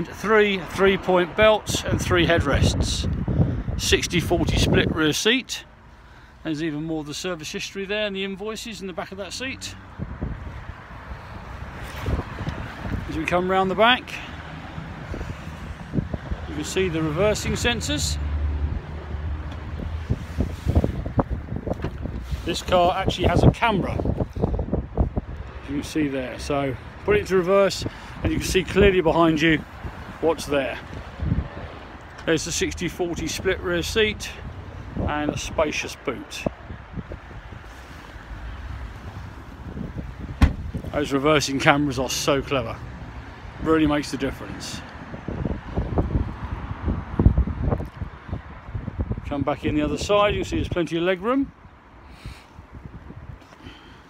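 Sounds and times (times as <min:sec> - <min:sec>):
wind buffeting microphone: 0:00.9 - 0:05.1, 0:09.9 - 0:35.8, 0:36.4 - 0:41.4, 0:44.9 - 0:50.8, 0:51.5 - 0:53.5.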